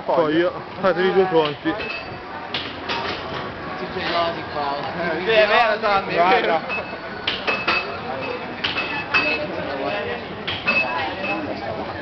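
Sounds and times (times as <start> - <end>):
street background noise: 0.0 - 12.0.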